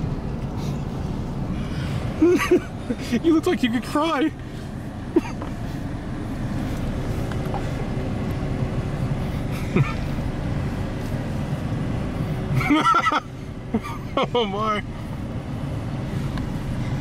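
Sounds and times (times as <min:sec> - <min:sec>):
car engine low rumble: 0:00.0 - 0:17.0
person's voice: 0:03.0 - 0:04.4.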